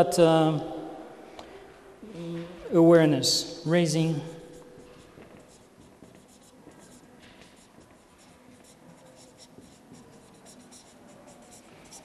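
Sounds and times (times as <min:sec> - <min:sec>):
marker scratching on paper: 0:04.4 - 0:12.0.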